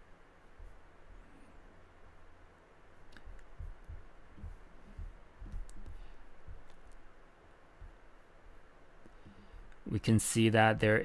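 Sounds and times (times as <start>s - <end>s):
computer mouse clicking: 3.1s - 3.8s, 4.4s - 7.0s
mouse knocking on desk: 3.4s - 6.8s.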